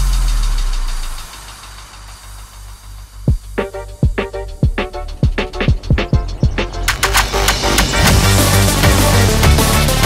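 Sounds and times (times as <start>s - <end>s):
high hiss-like synth texture: 0.0s - 9.4s.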